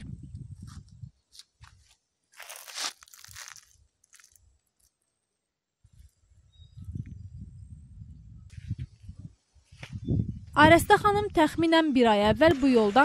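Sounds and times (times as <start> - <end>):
footsteps crunching on dry leaves: 1.4 - 4.4.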